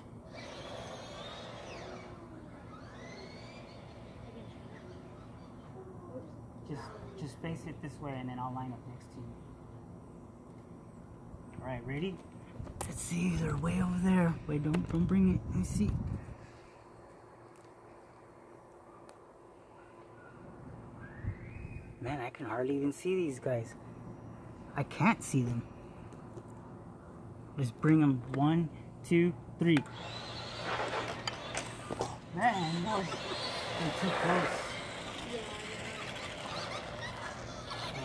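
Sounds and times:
outdoor background hiss: 0.0s - 38.0s
steady low hum: 0.0s - 38.0s
faint distant talking: 1.7s - 7.6s.

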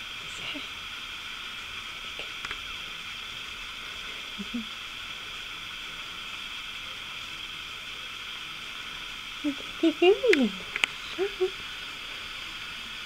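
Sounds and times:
background hiss: 0.0s - 13.0s.

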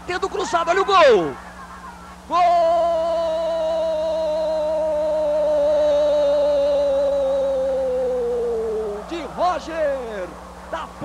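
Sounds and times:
commentator shouting goal: 0.0s - 1.4s, 5.8s - 11.0s.

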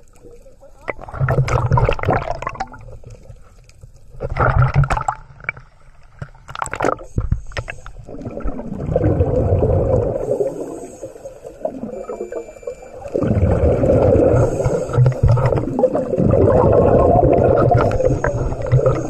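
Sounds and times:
bubbling rumble: 0.8s - 3.4s, 4.1s - 5.6s, 8.0s - 10.6s, 11.6s - 19.0s
diver exhaling bubbles: 1.0s - 3.0s, 8.1s - 11.0s, 13.1s - 19.0s.

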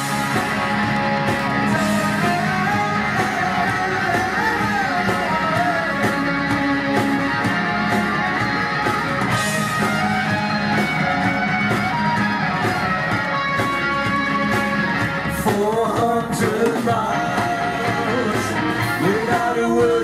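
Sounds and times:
electric guitars: 0.0s - 20.0s
steady drum beat: 0.0s - 20.0s.

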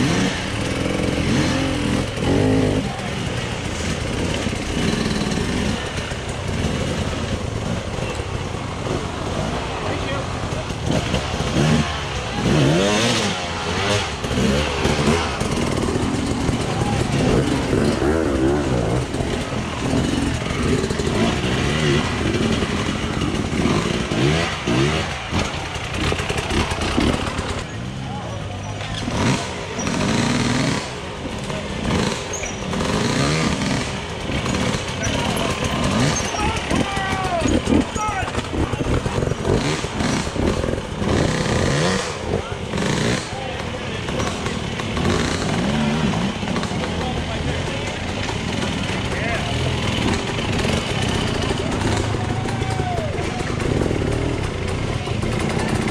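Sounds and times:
dirt bike engines revving: 0.0s - 55.9s
spectators' voices and shouts: 33.7s - 55.9s.

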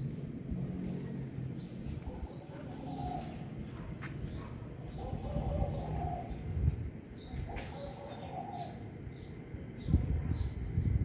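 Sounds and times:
steady low rumble: 0.0s - 7.8s, 8.8s - 11.0s
dove cooing: 2.0s - 6.6s, 7.4s - 8.8s.

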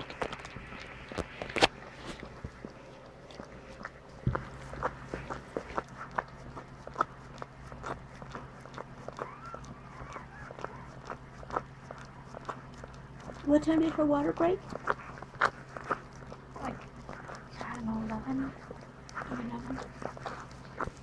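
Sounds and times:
dog licking wetly: 0.0s - 21.0s.

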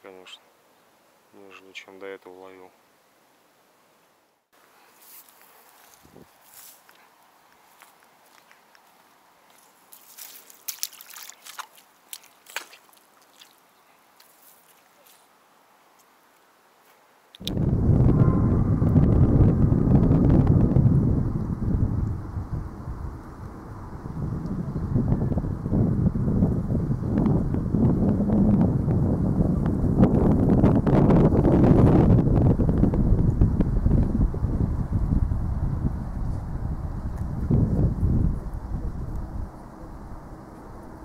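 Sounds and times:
wind buffeting microphone: 6.0s - 6.3s, 17.4s - 41.0s.

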